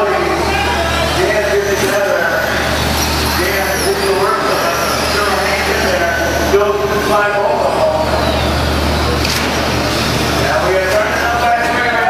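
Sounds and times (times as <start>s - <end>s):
hubbub of indistinct voices: 0.0s - 12.0s
rc truck motor whine: 0.0s - 12.0s.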